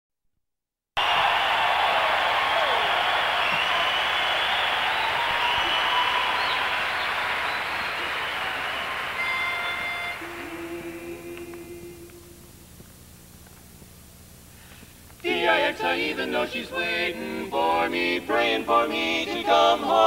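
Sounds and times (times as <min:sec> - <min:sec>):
whistles: 0:01.0 - 0:10.7
audience applauding and cheering: 0:01.0 - 0:10.8.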